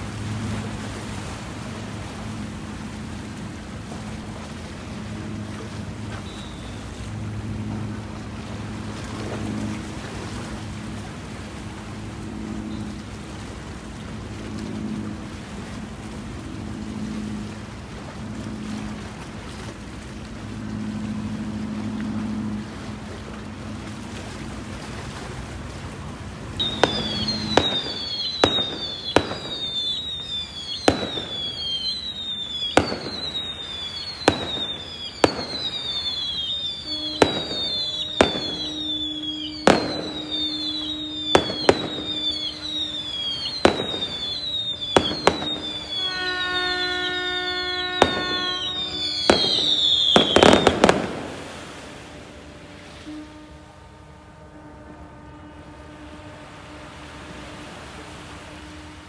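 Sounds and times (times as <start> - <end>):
low ship's horn: 0.0 - 59.0
fireworks whistles: 4.9 - 9.9, 26.6 - 53.5
fireworks bangs: 26.6 - 52.6.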